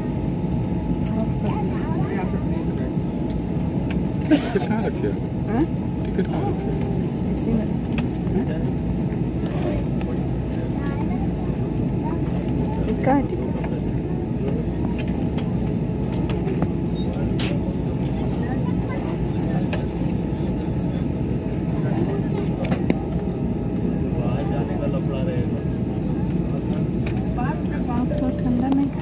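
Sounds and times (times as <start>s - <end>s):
jet engines rumbling in cabin: 0.0s - 29.0s.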